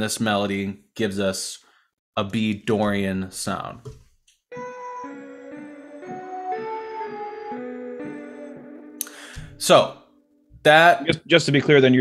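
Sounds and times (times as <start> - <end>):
synthesizer melody: 4.5 - 11.1.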